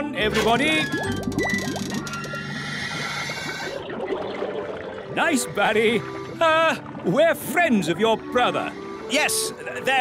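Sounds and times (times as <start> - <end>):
background music: 0.0 - 10.0
cartoon bubbling bloops: 0.6 - 5.7.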